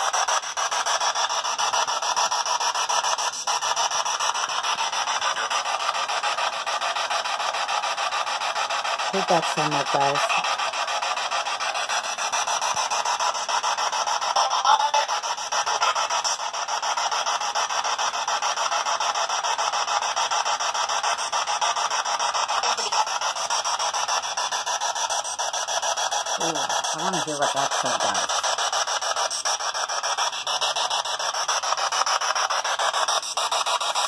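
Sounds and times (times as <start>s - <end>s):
radio static sweeping: 9.1s - 18.0s, 22.3s - 31.3s.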